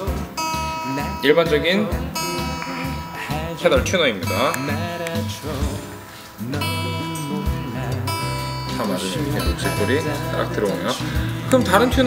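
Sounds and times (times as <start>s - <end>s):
guitar string ringing: 0.0s - 12.0s.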